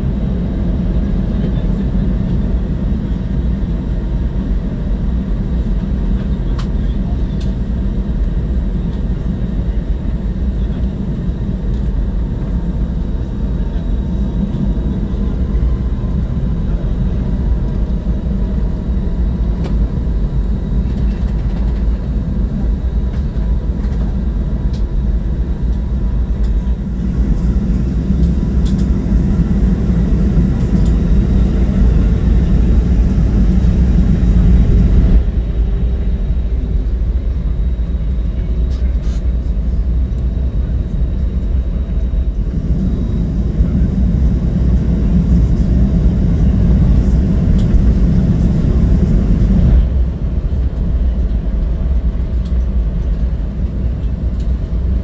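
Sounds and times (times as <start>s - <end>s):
jet engine rumble inside cabin: 0.0s - 55.0s.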